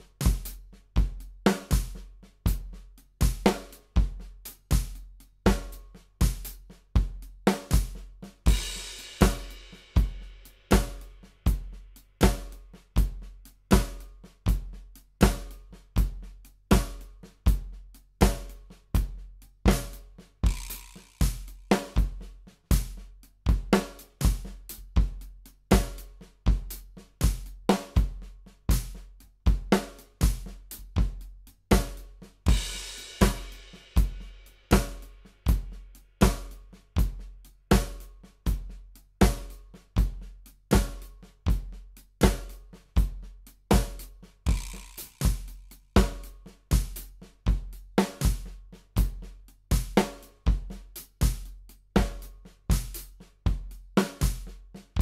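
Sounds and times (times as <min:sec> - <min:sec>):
drum kit groove: 0:00.0 - 0:55.0.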